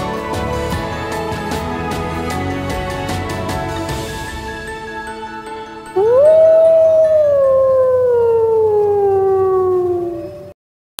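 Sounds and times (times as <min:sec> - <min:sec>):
music: 0:00.0 - 0:09.0
wolf howling: 0:05.9 - 0:10.5.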